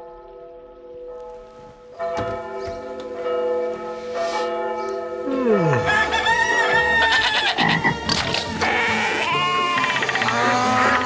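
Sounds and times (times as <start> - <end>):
music: 5.2 - 11.0
farm animal calls: 5.6 - 11.0
goat and sheep bleats: 5.7 - 11.0.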